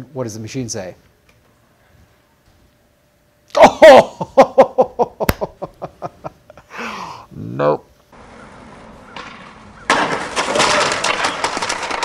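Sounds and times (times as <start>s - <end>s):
low background hiss: 0.0s - 8.2s
loud crash with clattering: 9.2s - 12.0s.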